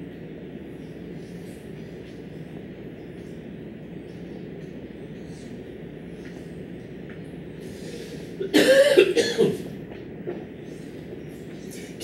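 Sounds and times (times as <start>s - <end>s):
low background hum: 0.0s - 12.0s
person coughing: 8.4s - 9.7s.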